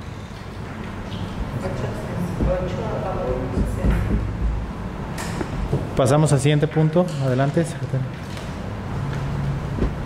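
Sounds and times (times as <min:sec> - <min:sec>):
steady low rumble: 0:01.5 - 0:05.7, 0:09.6 - 0:10.0.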